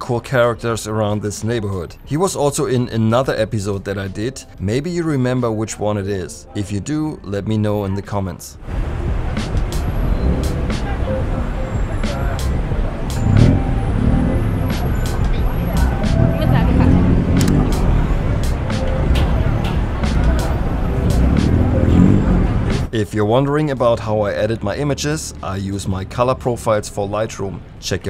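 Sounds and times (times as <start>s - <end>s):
passers-by talking: 7.9s - 22.9s
cars running past: 8.6s - 22.9s.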